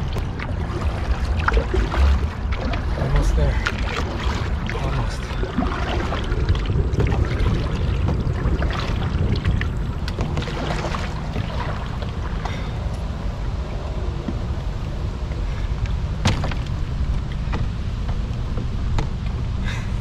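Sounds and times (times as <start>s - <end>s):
paddle strokes splashing water: 0.0s - 19.9s
wind buffeting microphone: 0.0s - 20.0s.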